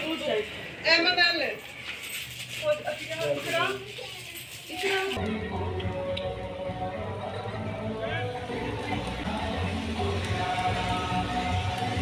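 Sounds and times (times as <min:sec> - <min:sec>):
faint jingling of bangles: 0:01.5 - 0:05.2
people talking: 0:02.6 - 0:05.3.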